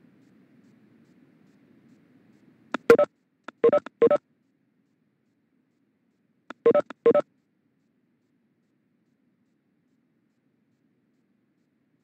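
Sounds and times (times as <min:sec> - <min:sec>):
two-note electronic beeps: 0:02.8 - 0:04.2, 0:06.5 - 0:07.2.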